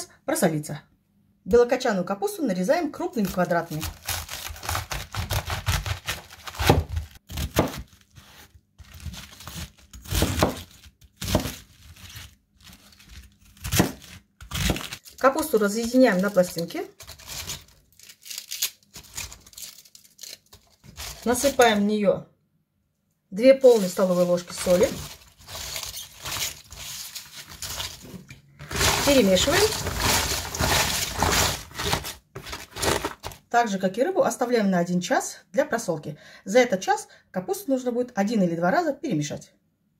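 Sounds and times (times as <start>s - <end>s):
knife cutting cabbage on board: 3.2s - 15.0s, 23.7s - 33.4s.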